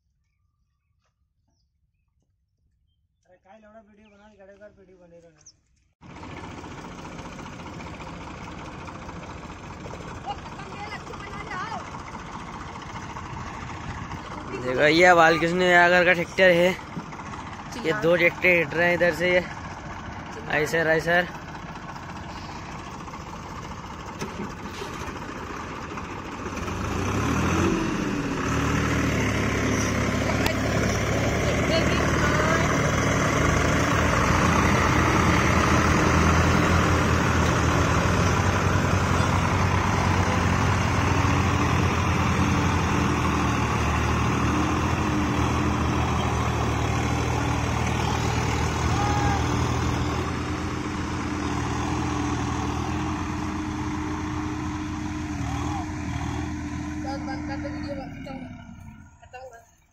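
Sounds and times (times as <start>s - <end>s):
tractor diesel engines under load: 5.4s - 59.9s.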